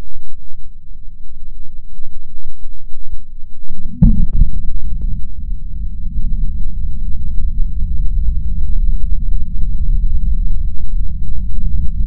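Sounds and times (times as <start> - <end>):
sharp boom: 3.9 - 7.3
deep rumble of rocket explosion: 3.9 - 12.0.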